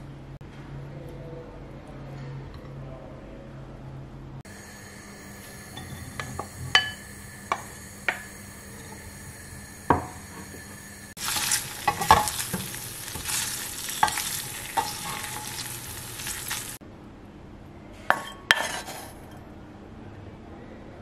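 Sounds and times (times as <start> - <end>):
meat sizzling in a frying pan: 5.4 - 16.8
wooden spoon stirring: 5.4 - 16.8
spoon knocking against pan: 5.8 - 9.1, 9.9 - 10.7, 11.6 - 16.0.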